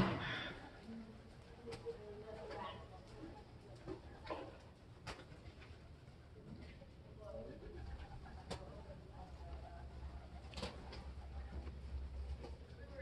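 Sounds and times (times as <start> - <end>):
faint bird cooing: 0.0 - 4.6, 5.3 - 13.0
faint voices: 0.0 - 13.0.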